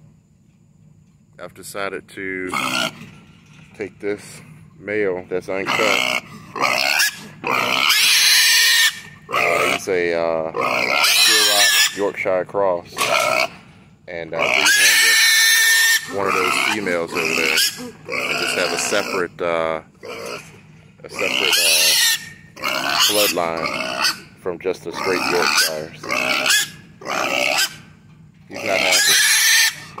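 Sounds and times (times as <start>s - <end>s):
pig squealing: 2.5s - 3.1s, 5.5s - 12.2s, 12.9s - 30.0s.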